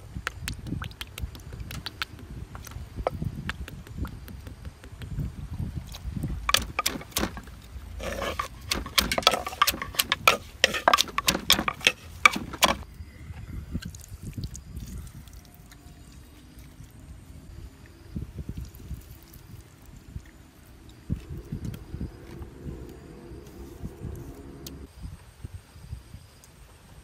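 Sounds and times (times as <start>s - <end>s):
handling sounds: 6.5s - 12.8s
pestle pounding in stone mortar: 6.5s - 12.8s.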